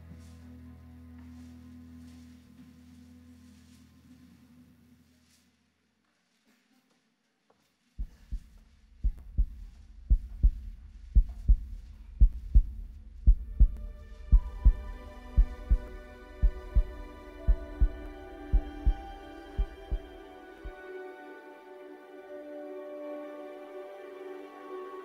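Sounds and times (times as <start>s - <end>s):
heartbeat sound effect: 8.0s - 20.8s
ambient music chord: 13.5s - 25.0s.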